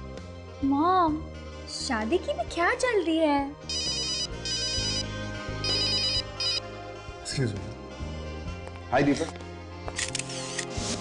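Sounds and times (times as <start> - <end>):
background music: 0.0 - 11.0
mobile phone ringtone: 3.7 - 6.7.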